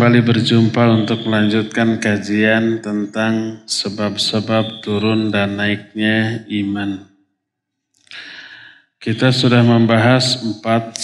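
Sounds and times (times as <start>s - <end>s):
man speaking: 0.0s - 7.0s, 8.1s - 11.0s
man breathing in: 8.1s - 8.9s.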